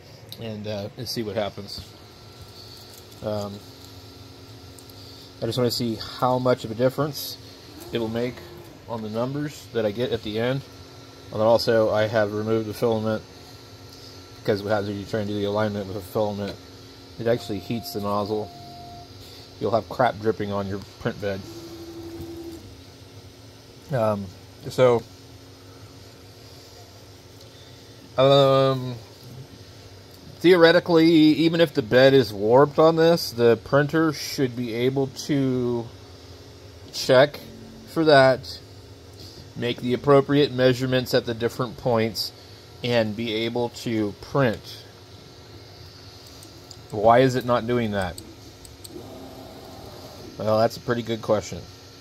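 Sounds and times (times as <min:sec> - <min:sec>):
faint steady motor hum: 0:00.0 - 0:52.0.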